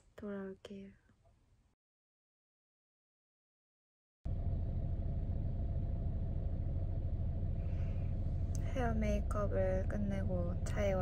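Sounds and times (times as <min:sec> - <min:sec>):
car cabin low rumble: 0:04.3 - 0:11.0
faint steady hum: 0:04.3 - 0:11.0.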